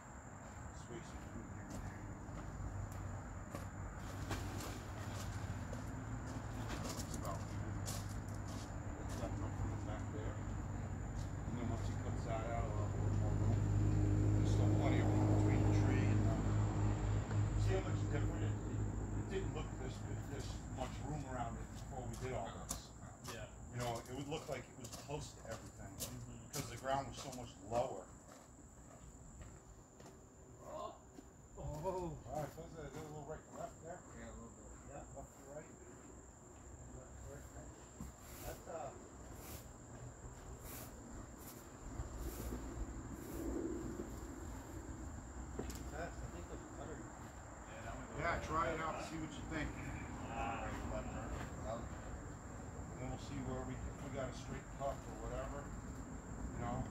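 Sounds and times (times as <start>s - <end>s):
insect trill: 0.0s - 56.9s
distant voices: 0.2s - 28.3s, 28.9s - 56.9s.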